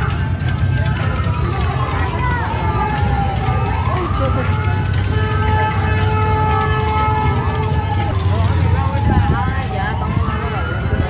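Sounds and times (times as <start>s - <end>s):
people's voices: 0.0s - 11.0s
siren wailing: 0.0s - 11.0s.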